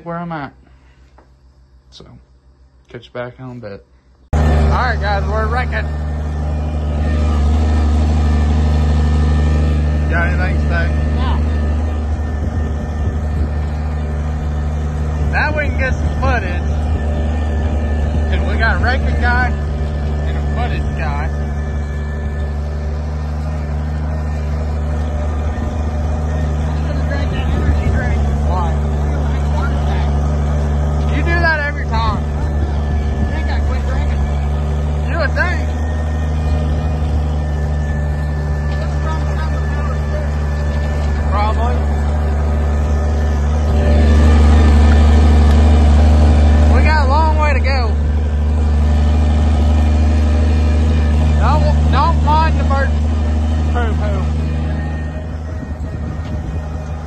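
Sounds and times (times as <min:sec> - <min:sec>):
tractor engine running: 0:01.0 - 0:57.0.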